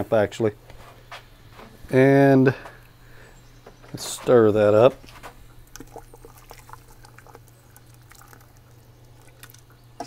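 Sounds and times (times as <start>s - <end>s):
liquid sloshing in a pot: 5.0s - 10.0s.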